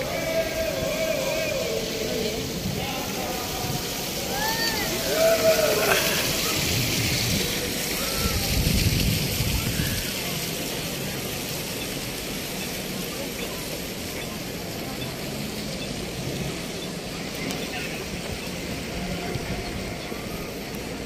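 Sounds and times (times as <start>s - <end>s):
crowd talking: 0.0s - 21.0s
fountain water splashing: 0.0s - 21.0s.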